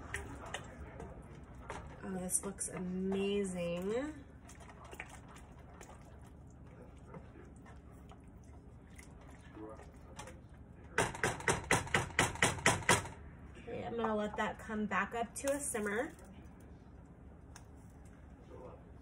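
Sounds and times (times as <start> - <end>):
wooden spoon stirring pasta: 0.0 - 11.4.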